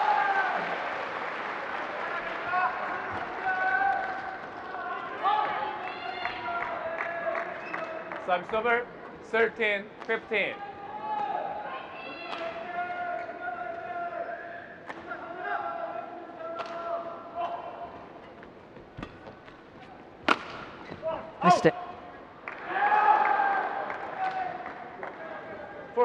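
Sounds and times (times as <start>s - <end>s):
loud shout or cheer: 0.0s - 1.1s, 1.9s - 7.5s, 10.7s - 14.4s, 22.5s - 25.5s
shoes squeaking on court floor: 18.2s - 21.6s
rackets hitting shuttlecock: 20.2s - 21.0s.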